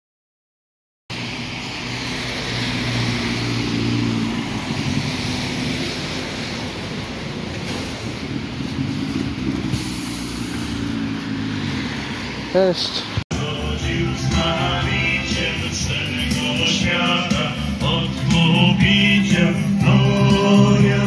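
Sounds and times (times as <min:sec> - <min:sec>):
bus engine idling: 0:01.1 - 0:21.0
wet traffic: 0:01.1 - 0:21.0
brief high hiss: 0:09.7 - 0:10.8.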